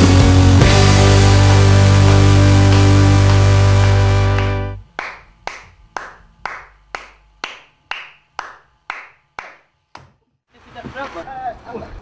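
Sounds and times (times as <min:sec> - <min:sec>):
hand claps with echo: 0:02.1 - 0:10.2.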